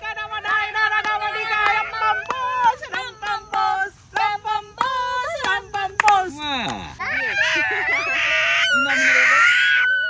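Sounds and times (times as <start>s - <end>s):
small child squealing: 7.0s - 10.0s.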